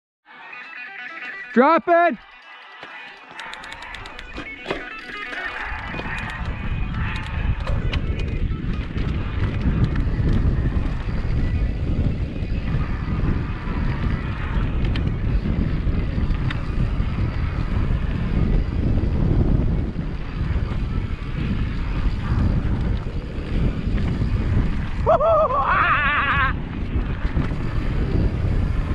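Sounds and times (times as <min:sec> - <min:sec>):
sharp clicks from bike: 0:02.2 - 0:12.5, 0:13.3 - 0:25.1, 0:26.3 - 0:28.4
bike tyres on dirt and stones: 0:02.2 - 0:28.9
wind buffeting microphone: 0:05.5 - 0:28.9.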